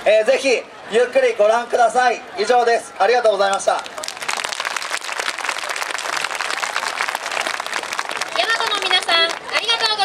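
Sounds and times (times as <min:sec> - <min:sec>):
crowd applauding: 0:03.5 - 0:10.0.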